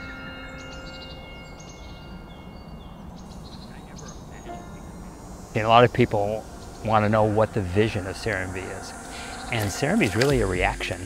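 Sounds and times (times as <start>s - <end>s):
birds chirping: 0.0s - 11.0s
long held tones: 0.0s - 11.0s
steady low rumble: 3.1s - 11.0s.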